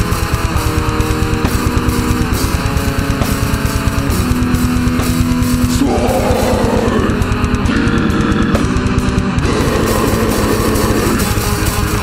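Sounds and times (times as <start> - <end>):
bass guitar: 0.0 - 12.0
distorted electric guitar: 0.0 - 12.0
rapid dense drumming: 0.0 - 12.0.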